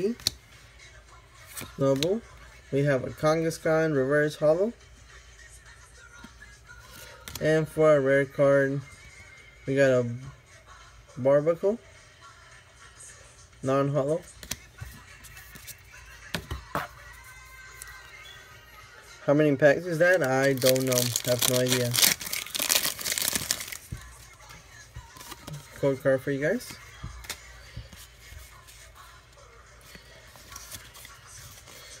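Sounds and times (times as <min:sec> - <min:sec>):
faint background music: 0:00.0 - 0:32.0
paper cards rustling and clicking: 0:06.8 - 0:07.5, 0:14.4 - 0:16.9, 0:20.0 - 0:25.8, 0:26.5 - 0:28.8, 0:29.8 - 0:32.0.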